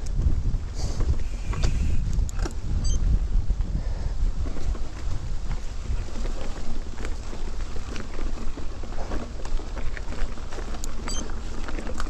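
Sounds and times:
wind and tyre rumble: 0.0s - 12.0s
light clicks from bike: 1.0s - 2.6s.

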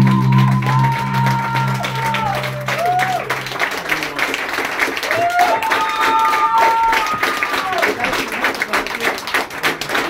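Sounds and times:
audience clapping: 0.0s - 10.0s.

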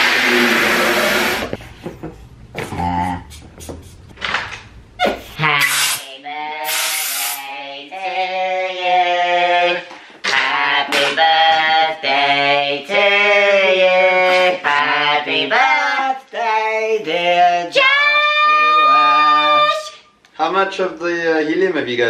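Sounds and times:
helium valve hissing: 0.0s - 1.6s, 5.7s - 7.4s.

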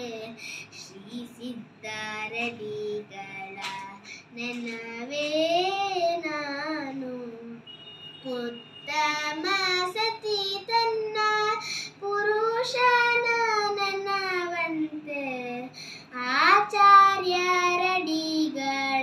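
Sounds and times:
girl singing devotional song: 0.0s - 19.0s.

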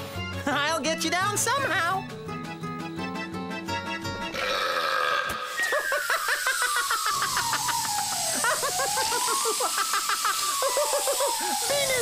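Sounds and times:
balloon deflating sputter: 4.4s - 12.0s
hiss of escaping air: 5.4s - 12.0s.

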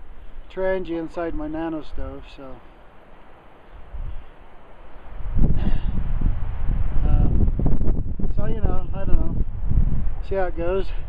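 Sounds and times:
outdoor ambience hiss: 0.0s - 11.0s.

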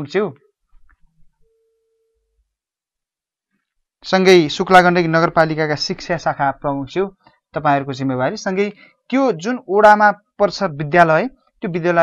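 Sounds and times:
faint pure tone: 0.0s - 3.3s.

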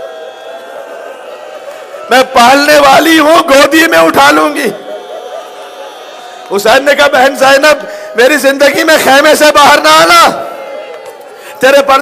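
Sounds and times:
people weeping and wailing: 0.0s - 2.2s, 4.2s - 11.6s.

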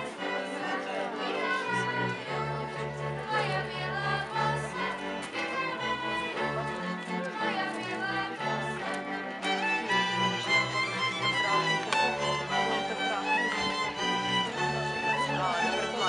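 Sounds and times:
children singing: 0.0s - 10.3s
folk string band: 0.0s - 16.0s.

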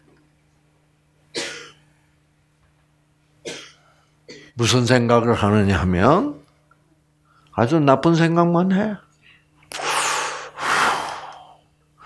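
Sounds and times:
man breathing through mouth: 9.7s - 11.7s.

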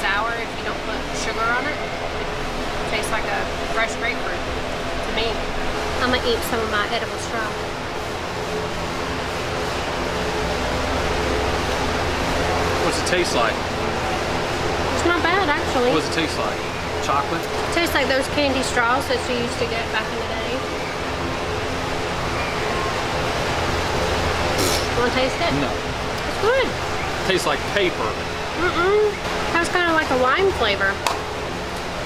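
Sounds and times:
steady rushing noise: 0.0s - 32.0s.

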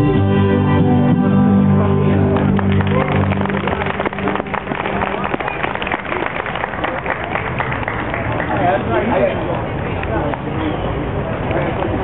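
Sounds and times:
audience clapping: 2.3s - 9.2s.

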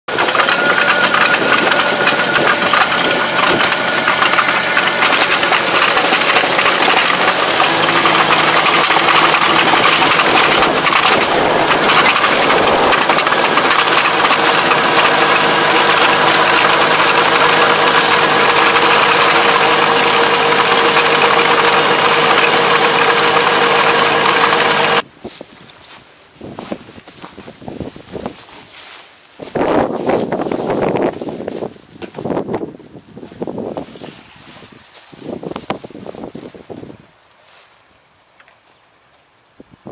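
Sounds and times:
tractor engine running: 0.1s - 25.1s
rotor churning soil: 0.1s - 37.8s.

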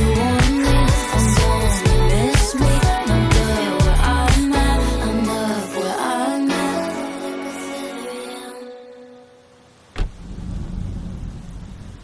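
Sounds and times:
car door slamming: 9.9s - 10.7s
low rumble: 10.0s - 12.0s.

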